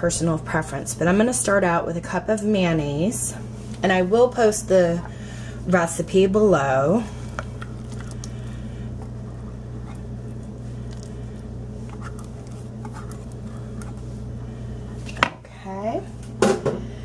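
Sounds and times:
steady low hum: 0.0s - 17.0s
spatula squishing mayonnaise: 6.9s - 15.2s.

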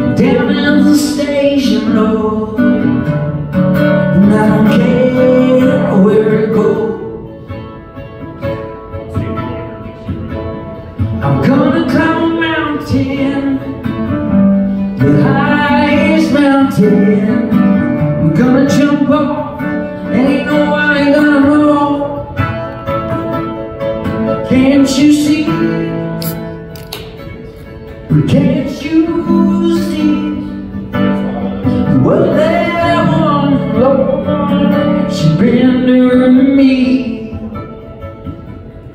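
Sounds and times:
man singing: 0.0s - 7.5s, 11.1s - 22.8s, 24.1s - 26.6s, 27.9s - 38.0s
acoustic guitar strumming: 0.0s - 38.9s.

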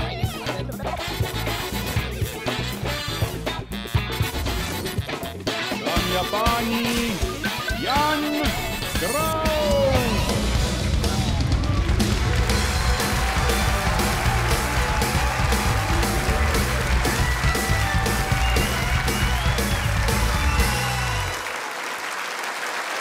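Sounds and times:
rock theme music with drums: 0.0s - 21.4s
studio audience applause: 9.0s - 23.0s.

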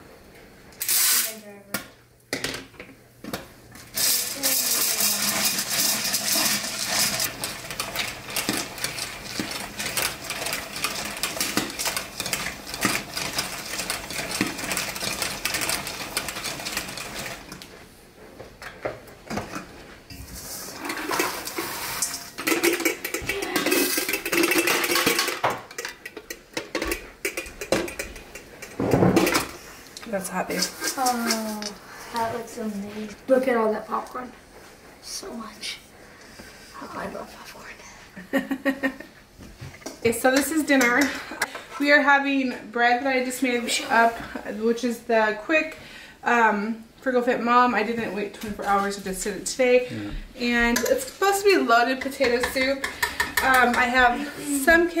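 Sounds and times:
popcorn popping: 0.7s - 17.8s, 18.5s - 31.8s, 50.5s - 55.0s
kernels poured into popper: 0.8s - 1.3s, 3.9s - 17.5s, 20.4s - 25.6s
sausages sizzling in skillet: 0.8s - 1.4s, 3.8s - 17.6s, 20.1s - 25.3s.

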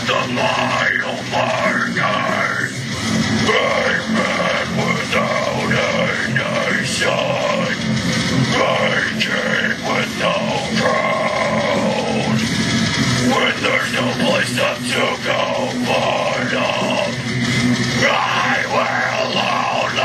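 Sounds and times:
heavy metal backing track: 0.0s - 20.0s
man growling and screaming: 0.0s - 20.0s.

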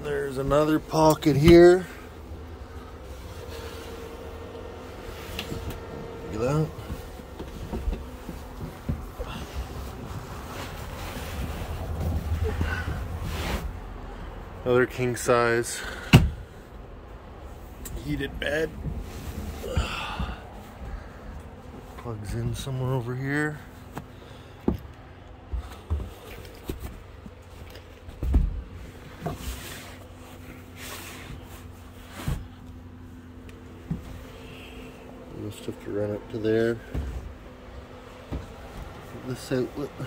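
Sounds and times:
faint steady hum: 0.0s - 40.0s
fabric rustling: 7.0s - 13.8s.

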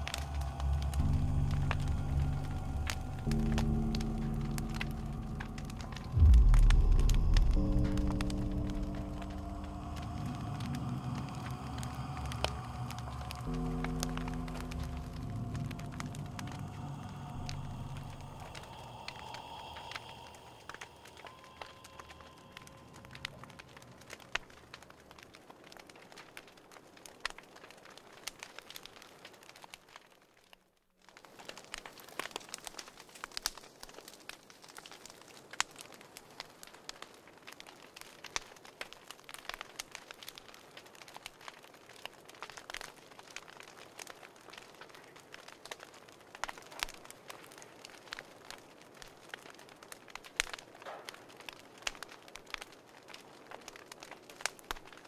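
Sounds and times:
fire crackling: 0.0s - 55.0s.

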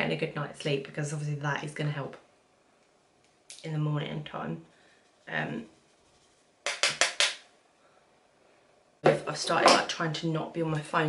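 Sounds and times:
sharp clicks of small objects: 6.6s - 7.5s.

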